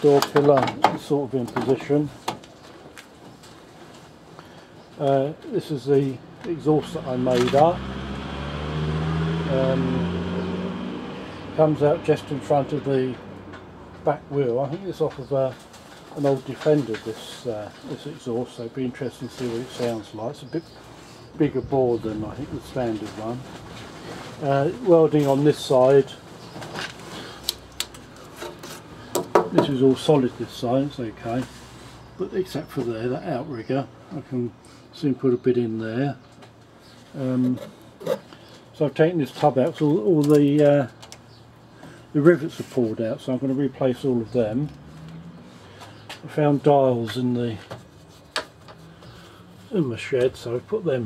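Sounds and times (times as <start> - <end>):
rubbing and scraping: 37.0 - 38.4, 47.1 - 50.4.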